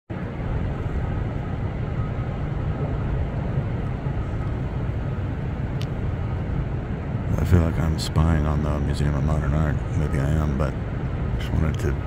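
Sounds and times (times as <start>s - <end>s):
city street traffic rumble: 0.1s - 12.0s.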